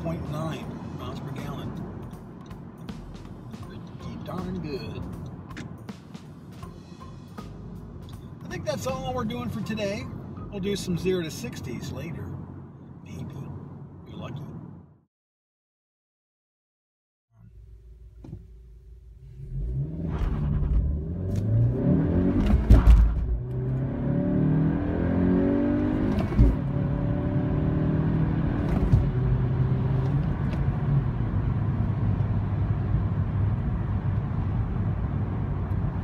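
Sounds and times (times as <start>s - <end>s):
car engine revving: 19.2s - 36.0s.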